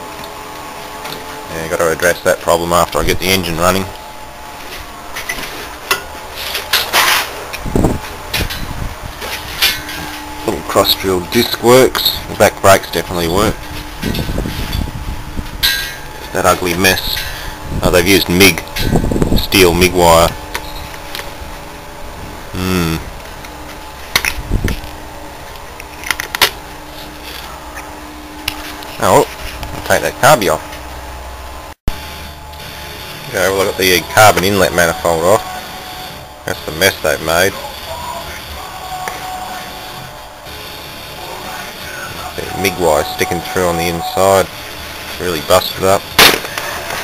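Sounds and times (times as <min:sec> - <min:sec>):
background hum: 0:00.0 - 0:47.0.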